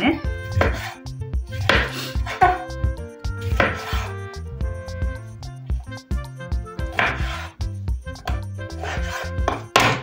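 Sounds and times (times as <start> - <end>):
background music: 0.0 - 10.0
knife slicing on wooden board: 0.4 - 2.7, 3.4 - 4.2, 6.9 - 7.6, 8.2 - 9.9.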